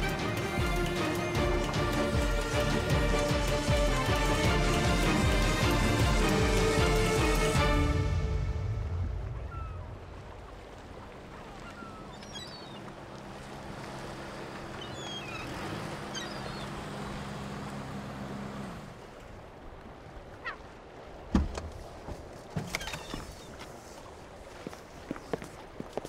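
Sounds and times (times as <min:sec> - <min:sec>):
truck engine humming: 0:00.0 - 0:08.2, 0:12.9 - 0:19.2
faint bird calls: 0:11.3 - 0:13.0, 0:14.6 - 0:17.2, 0:20.3 - 0:20.8, 0:22.7 - 0:23.6.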